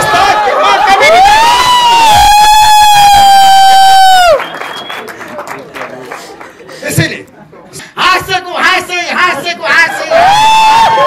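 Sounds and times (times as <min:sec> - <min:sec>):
crowd noise: 0:00.0 - 0:11.0
man shouting into a microphone: 0:08.0 - 0:11.0.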